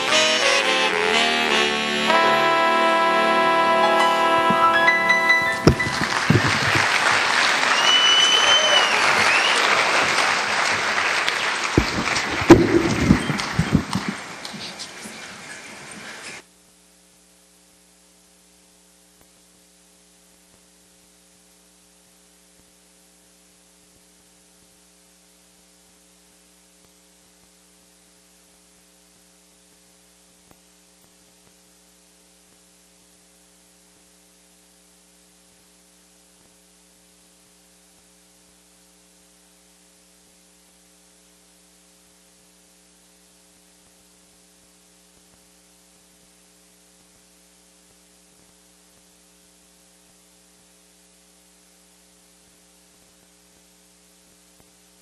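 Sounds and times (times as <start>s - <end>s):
electrical mains hum: 0.0s - 55.0s.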